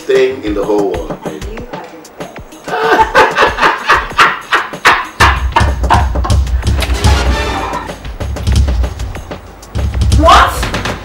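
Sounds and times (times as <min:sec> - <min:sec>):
sharp percussive hits: 0:03.1 - 0:11.0.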